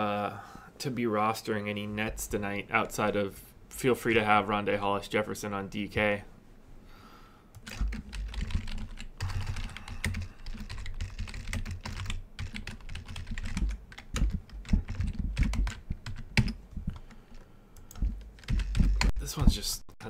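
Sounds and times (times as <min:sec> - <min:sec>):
typing on computer keyboard: 0:07.6 - 0:19.2.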